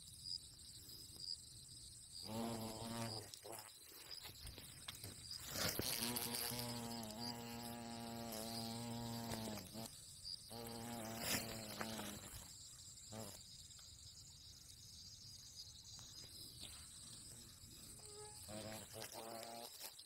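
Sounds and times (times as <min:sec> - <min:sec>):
wasp buzzing: 0:02.2 - 0:14.5, 0:16.5 - 0:20.0.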